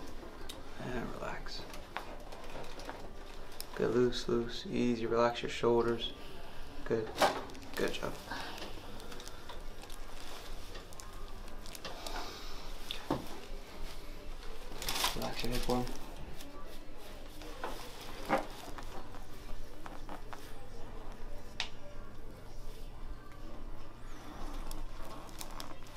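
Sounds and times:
clothing and paper rustling: 0.0s - 4.4s, 5.8s - 21.6s, 22.2s - 25.9s.

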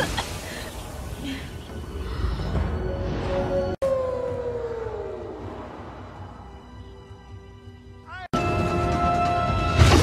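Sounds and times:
low rumble: 0.8s - 7.8s.

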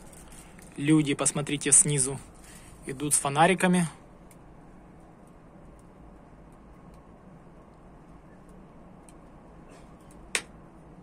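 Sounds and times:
faint low background noise: 0.0s - 11.0s.

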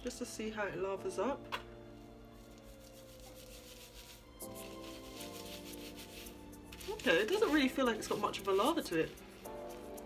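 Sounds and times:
soft background music: 0.0s - 10.0s
fingers rubbing wet hair: 2.4s - 10.0s.

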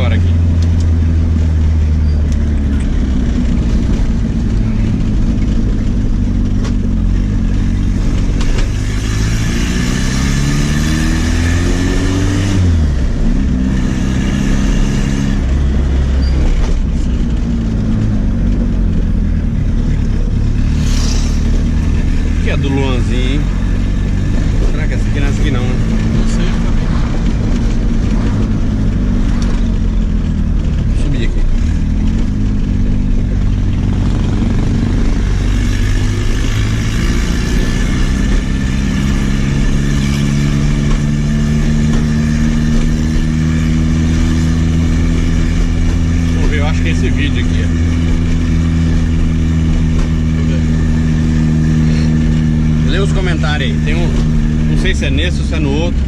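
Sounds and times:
car engine drone from inside: 0.0s - 56.0s.

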